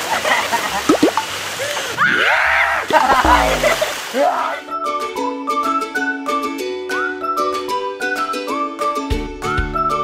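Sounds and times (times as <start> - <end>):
water splashing in pool: 0.5 - 2.0, 2.8 - 4.5.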